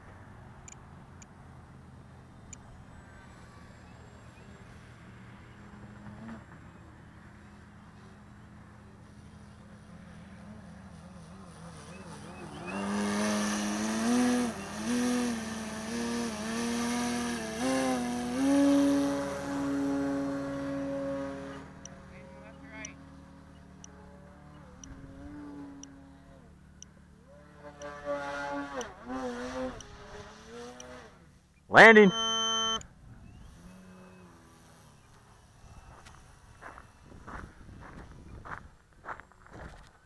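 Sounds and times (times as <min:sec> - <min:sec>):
model plane motor and propeller: 0:00.2 - 0:37.0.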